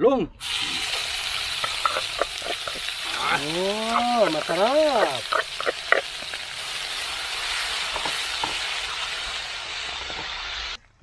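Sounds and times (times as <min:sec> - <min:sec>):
vegetables sizzling in hot oil: 0:00.4 - 0:10.8.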